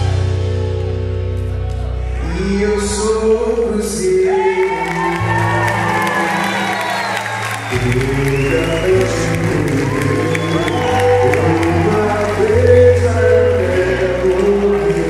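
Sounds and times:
live band playing: 0.0 - 3.4
person singing: 2.0 - 15.0
audience cheering and clapping: 4.0 - 15.0.

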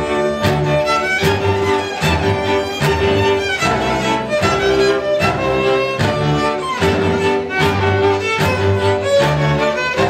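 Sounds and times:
bowed double bass: 0.0 - 10.0
fiddle melody: 0.0 - 10.0
viola accompaniment: 0.0 - 10.0.

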